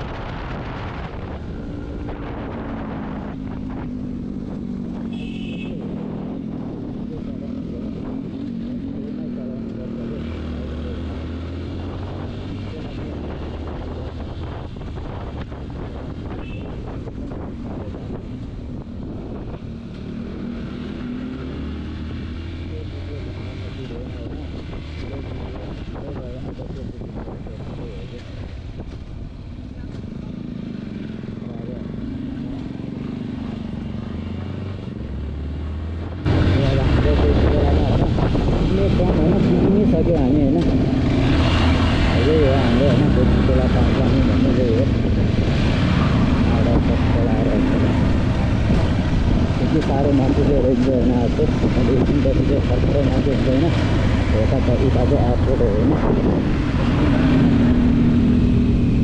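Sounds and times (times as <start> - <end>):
motorcycle engine hum: 0.0 - 59.0
road and wind noise: 0.0 - 59.0.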